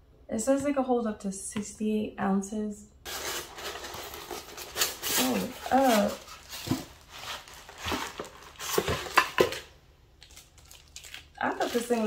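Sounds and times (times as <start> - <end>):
packaging rustling: 3.1 - 12.0.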